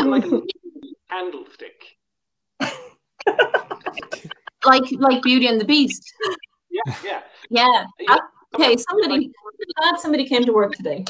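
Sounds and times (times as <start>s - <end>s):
people laughing: 0.0s - 0.9s, 2.6s - 4.6s
voices: 3.2s - 11.0s
person coughing: 3.9s - 4.4s.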